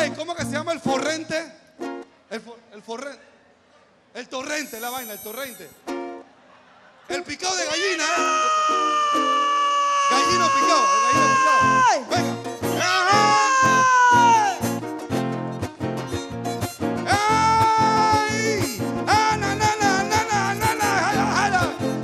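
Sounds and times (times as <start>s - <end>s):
strummed rhythm: 5.6s - 6.3s, 8.2s - 22.0s
folk band guitars and violin: 8.1s - 22.0s.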